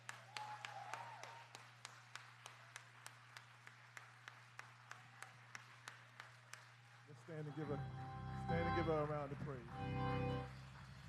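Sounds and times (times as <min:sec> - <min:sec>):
faint hand clapping: 0:00.0 - 0:07.6.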